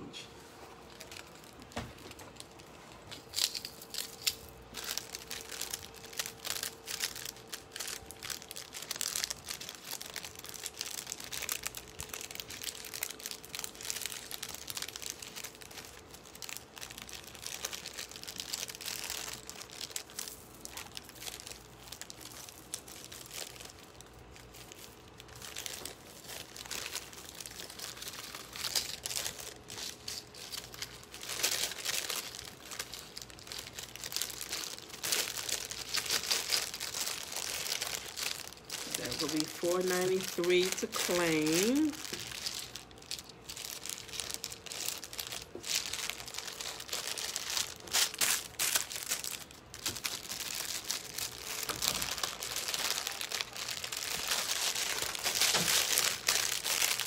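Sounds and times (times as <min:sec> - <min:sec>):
plastic bag crinkling: 0:00.4 - 0:57.0.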